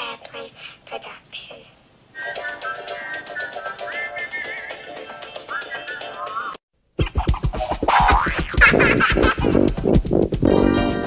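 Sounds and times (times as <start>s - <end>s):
plucked notes: 7.5s - 11.0s.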